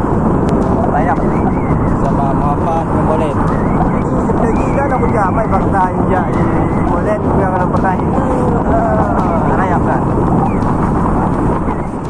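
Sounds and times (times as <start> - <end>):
motor scooter running: 0.0 - 12.0
wind on microphone: 0.0 - 12.0
person talking: 0.8 - 10.1.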